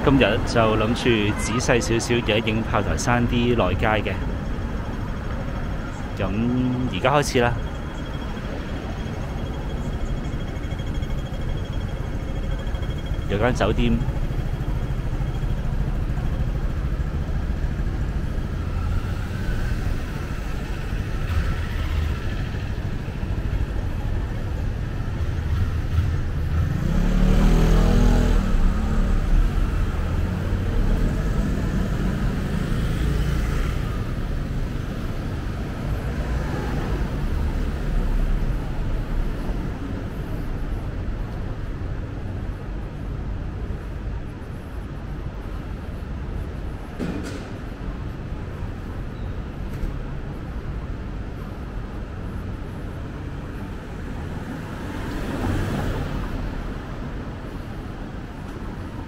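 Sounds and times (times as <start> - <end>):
street traffic: 0.0 - 59.0
vehicle passing close: 25.4 - 39.5.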